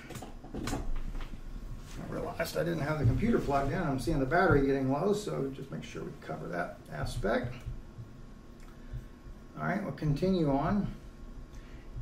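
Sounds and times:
rustling: 0.0 - 5.2
microphone handling rumble: 0.6 - 5.1.

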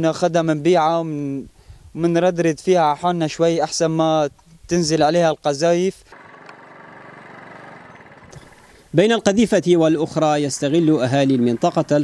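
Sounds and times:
small motorbike engine putter: 6.1 - 8.8.

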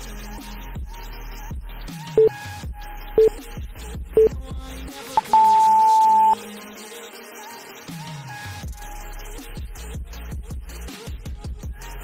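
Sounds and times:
background music: 2.0 - 8.4
long high beep: 5.2 - 6.4
short timer beeps: 5.2 - 6.4.

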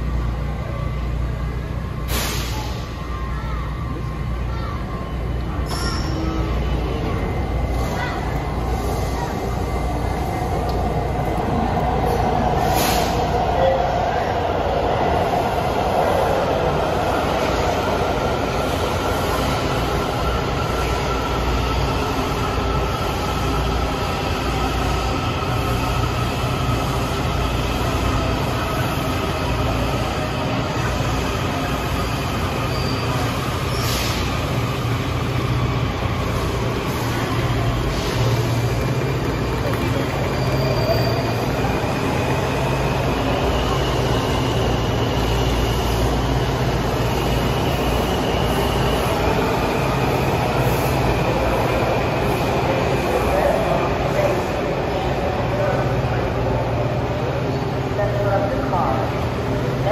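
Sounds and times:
subway train rumble: 0.0 - 59.9.

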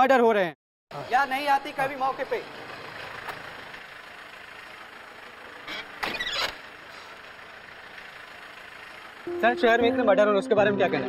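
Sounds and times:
vehicle and street noise: 0.9 - 11.0.

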